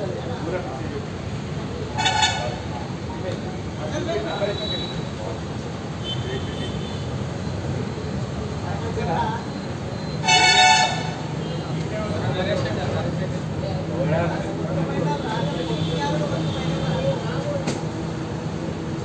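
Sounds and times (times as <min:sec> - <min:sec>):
horn toots: 0:02.0 - 0:02.6, 0:10.2 - 0:11.2.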